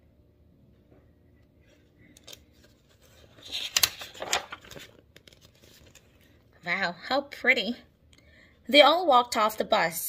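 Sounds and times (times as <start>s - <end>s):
paper page rustling: 2.1s - 6.4s.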